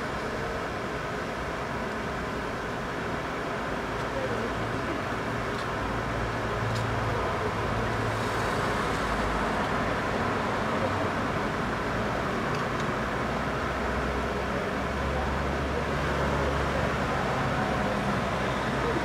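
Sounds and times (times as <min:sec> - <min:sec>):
city street traffic: 0:00.0 - 0:19.0
car passing: 0:07.7 - 0:11.6.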